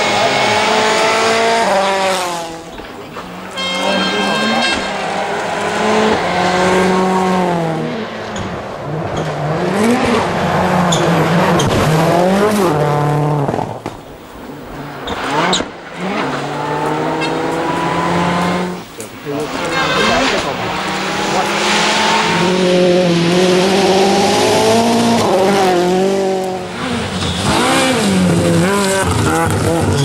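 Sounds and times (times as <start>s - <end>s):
rally car engines at full throttle: 0.0s - 30.0s.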